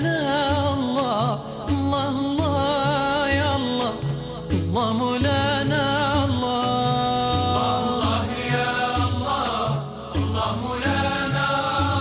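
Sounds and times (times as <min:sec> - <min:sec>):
men's ensemble singing: 0:07.5 - 0:12.0.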